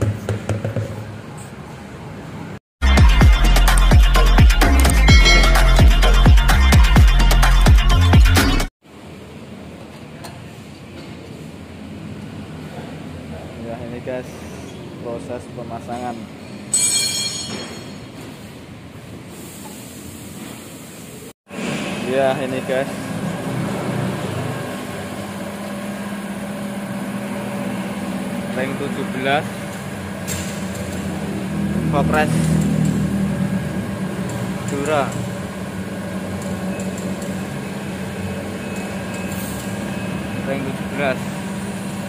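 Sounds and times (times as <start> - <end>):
high-pitched mechanical whine: 22.4 - 42.0.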